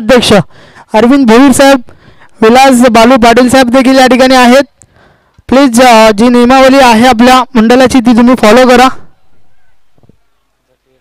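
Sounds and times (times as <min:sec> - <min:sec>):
man's voice: 0:00.0 - 0:04.7, 0:05.5 - 0:09.0
faint distant drawn-out call: 0:08.9 - 0:11.0.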